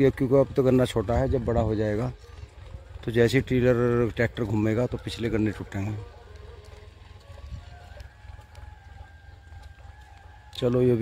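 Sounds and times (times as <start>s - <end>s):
distant tractor rumbling with whine: 0.0s - 11.0s.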